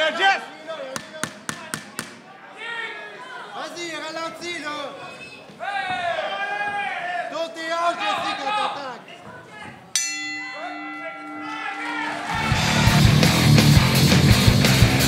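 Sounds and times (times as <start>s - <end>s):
people shouting: 5.6s - 8.8s, 10.7s - 15.0s
ring bell ringing: 10.0s - 13.2s
loud rock music: 12.2s - 15.0s.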